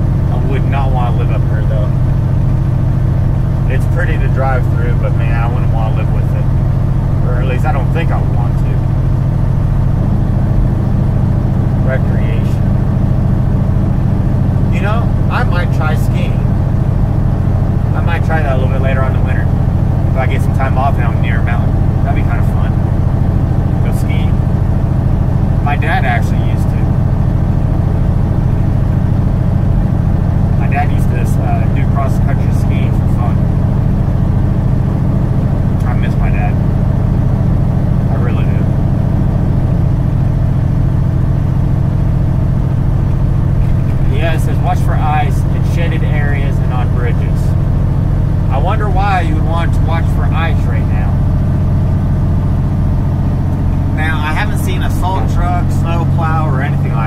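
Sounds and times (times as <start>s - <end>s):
truck diesel engine drone: 0.0s - 57.0s.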